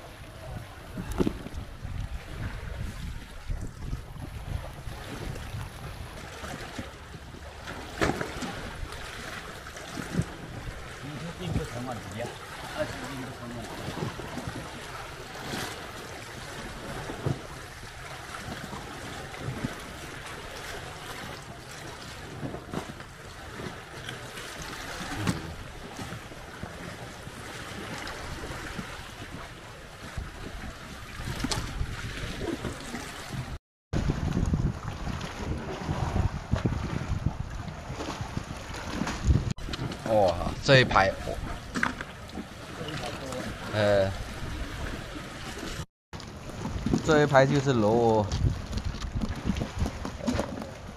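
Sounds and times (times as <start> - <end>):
wind rumbling on microphone: 0.0 - 42.8, 43.4 - 50.9
water lapping against seawall: 0.0 - 50.9.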